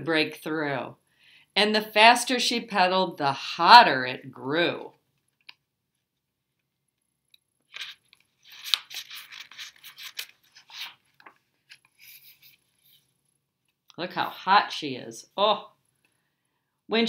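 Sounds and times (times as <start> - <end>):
book pages turning: 7.6 - 13.2.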